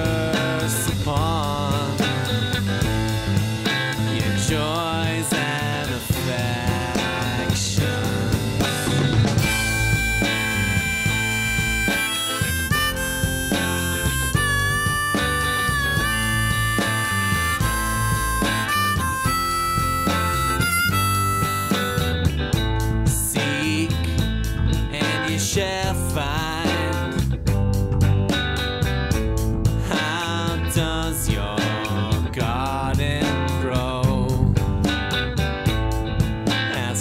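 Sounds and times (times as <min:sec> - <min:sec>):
rock band playing: 0:00.0 - 0:37.0
lead line with bending notes: 0:05.4 - 0:25.2.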